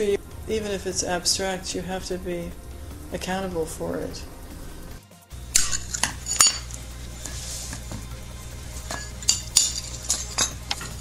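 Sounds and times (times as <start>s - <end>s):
glass pieces clinking: 5.6s - 6.8s, 8.8s - 11.0s.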